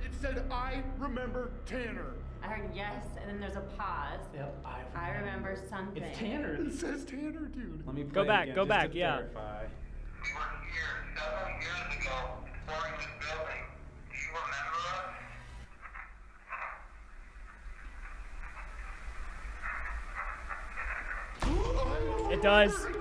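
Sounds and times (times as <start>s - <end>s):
voices from a recording: 7.7s - 17.0s.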